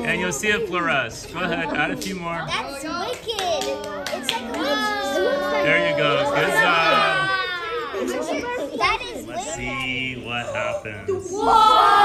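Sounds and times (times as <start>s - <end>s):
excited children's voices: 0.0s - 12.0s.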